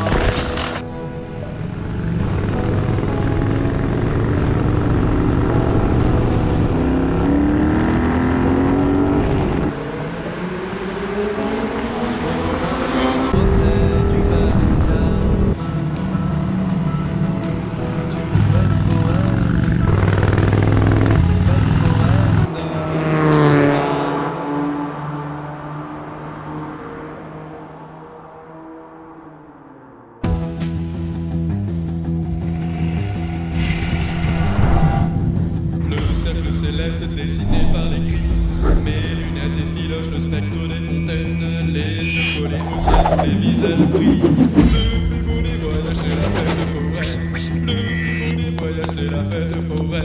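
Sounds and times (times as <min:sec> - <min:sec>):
motorcycle engine revving: 0:01.6 - 0:25.1
electronic music with steady beat: 0:42.1 - 0:48.6.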